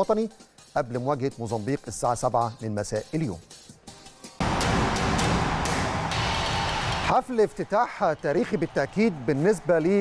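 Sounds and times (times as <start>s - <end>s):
loud dense sting music: 4.4s - 7.2s.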